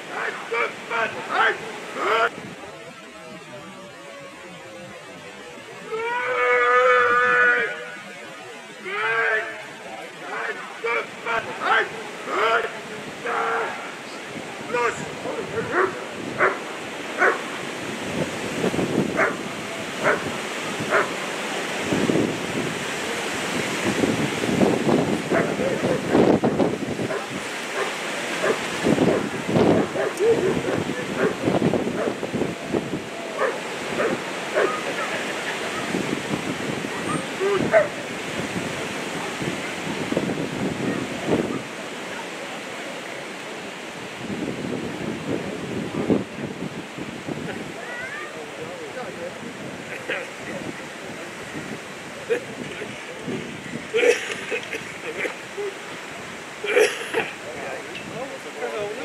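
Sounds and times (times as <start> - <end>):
person shouting a command: 0.1 - 2.3, 8.8 - 9.6, 10.2 - 13.9, 14.7 - 16.0
dog barking: 15.7 - 16.6, 17.2 - 17.5, 19.2 - 19.4, 20.0 - 20.3, 20.9 - 21.2, 25.3 - 25.8, 27.1 - 31.4, 32.0 - 32.2, 33.4 - 35.1, 37.6 - 38.0.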